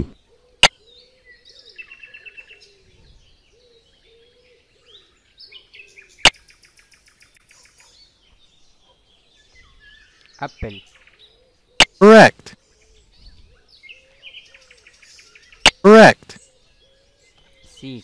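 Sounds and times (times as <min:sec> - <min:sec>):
birds chirping: 0:00.0 - 0:18.0
button clicks: 0:11.8 - 0:12.4, 0:15.7 - 0:16.2.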